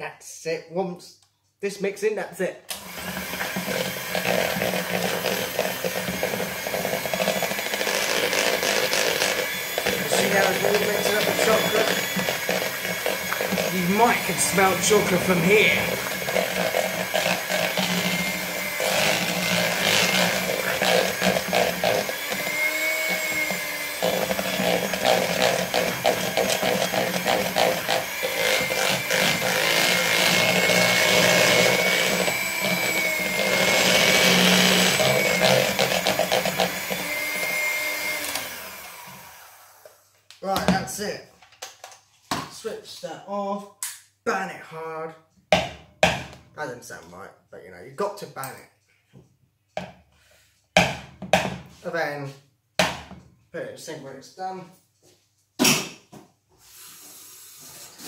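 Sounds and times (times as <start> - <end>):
electric hand mixer running: 2.7 - 40.0.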